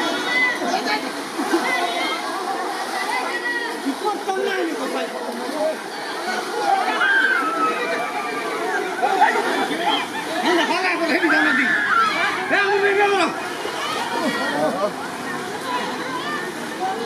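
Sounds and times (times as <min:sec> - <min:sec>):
crowd talking: 0:00.0 - 0:17.0
water sloshing: 0:00.0 - 0:17.0.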